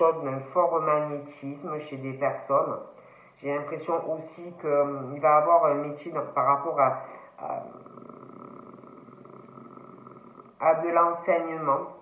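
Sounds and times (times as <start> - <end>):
woman's creaky hesitation hum: 7.2 - 10.6.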